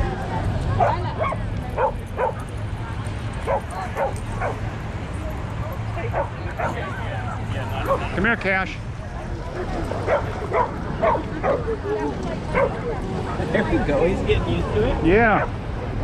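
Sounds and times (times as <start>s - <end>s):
dog barking: 0.8s - 2.4s, 3.4s - 4.6s, 6.1s - 6.9s, 10.0s - 11.7s, 12.5s - 12.8s.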